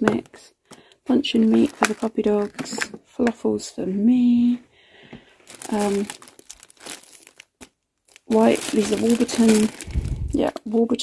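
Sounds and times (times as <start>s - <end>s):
plastic bag crinkling: 1.1s - 3.0s, 5.3s - 11.0s.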